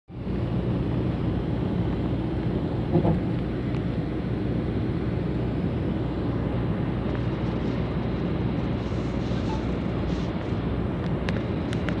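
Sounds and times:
road noise inside vehicle: 0.1s - 12.0s.

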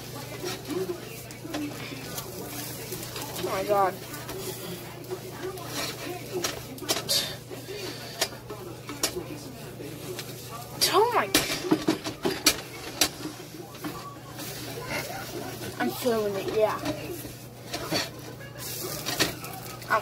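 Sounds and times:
spatula scraping frying pan: 0.0s - 20.0s.

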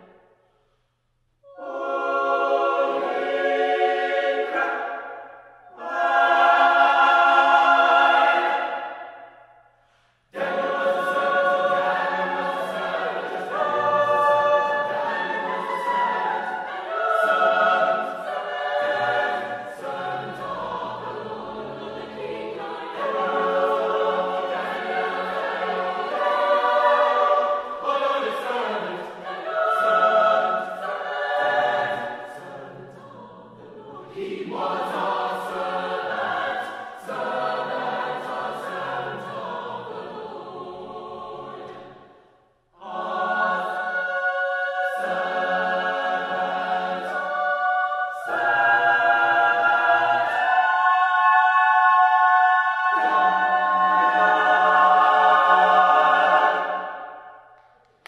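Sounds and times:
mixed choir singing: 1.4s - 9.4s, 10.3s - 57.5s.

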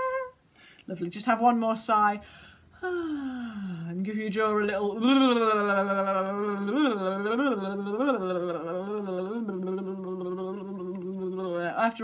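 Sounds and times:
woman's voice long sigh: 2.8s - 3.9s.

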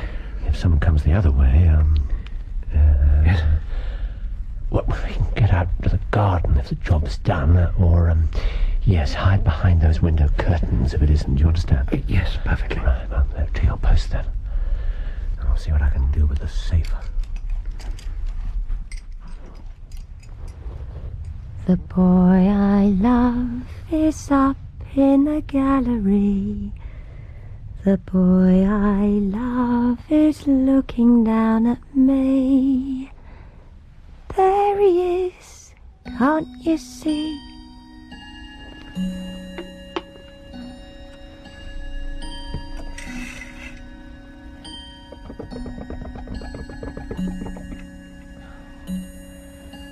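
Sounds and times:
low steady rumble: 0.0s - 49.9s
held musical drone: 37.4s - 49.9s
clock ticking: 42.6s - 49.1s.

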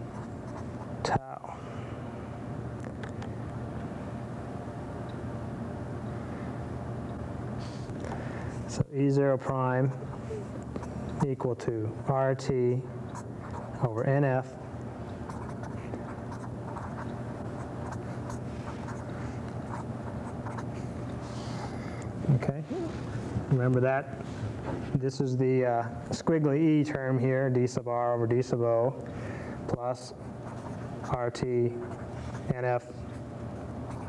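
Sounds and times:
low background hum: 0.0s - 34.0s
marker scratching on paper: 15.2s - 20.8s, 30.4s - 34.0s.

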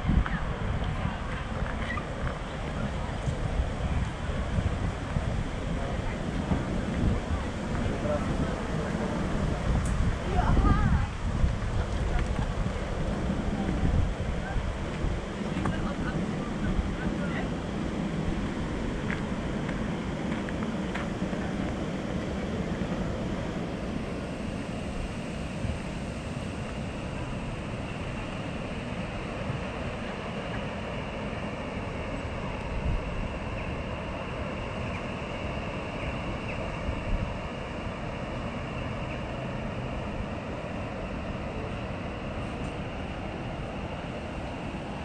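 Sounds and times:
broad rushing sound: 0.0s - 45.0s.

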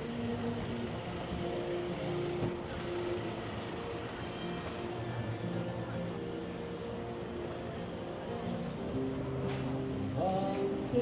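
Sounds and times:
faint music or voices: 0.0s - 11.0s.

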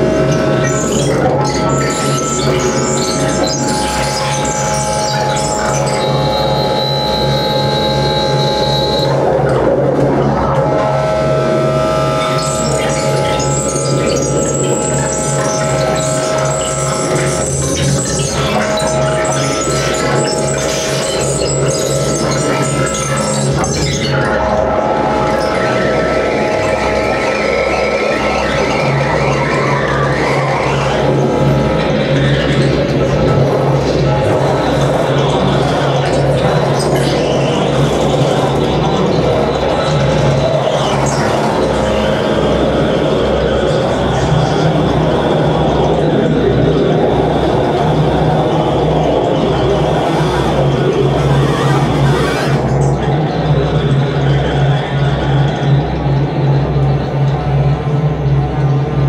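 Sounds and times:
pulsing low drone: 0.0s - 59.0s
sustained electronic tones: 0.0s - 59.0s.

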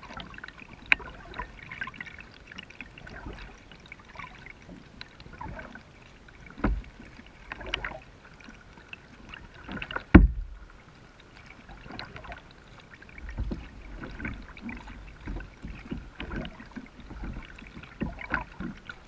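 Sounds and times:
paddle splashing in water: 0.0s - 19.0s
deep thump: 10.1s - 10.7s.

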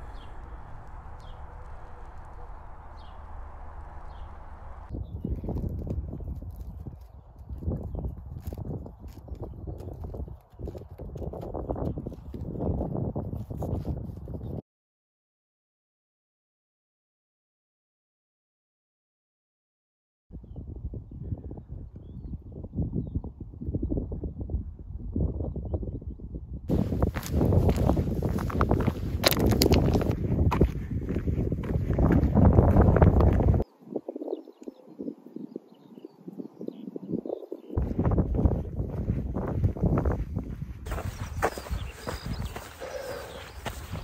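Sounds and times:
low wind rumble on microphone: 0.0s - 14.6s, 20.3s - 44.0s
footsteps crunching on gravel: 26.7s - 33.6s, 37.8s - 44.0s.

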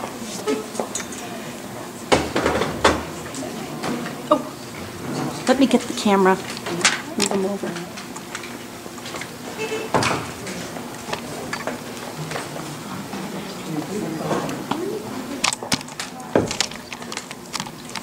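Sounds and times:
indistinct voices talking: 3.0s - 8.2s, 9.2s - 17.4s.

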